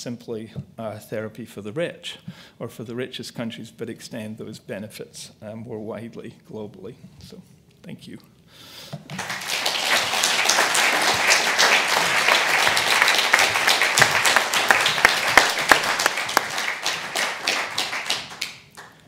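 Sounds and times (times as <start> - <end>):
audience applauding: 9.1 - 19.0.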